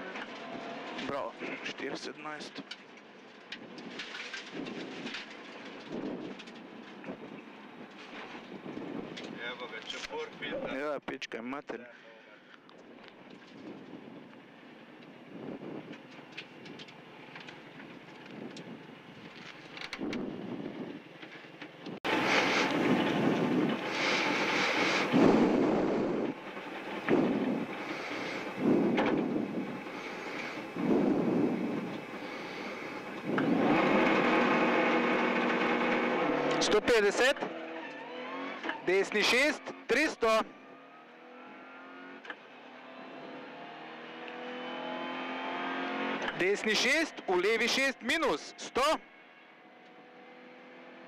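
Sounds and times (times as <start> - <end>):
car engine revving: 22.0 - 47.9, 49.6 - 51.0.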